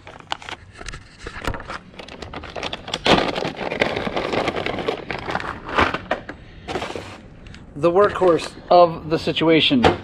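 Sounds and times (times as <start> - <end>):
plastic bag rustling: 0.0 - 7.3.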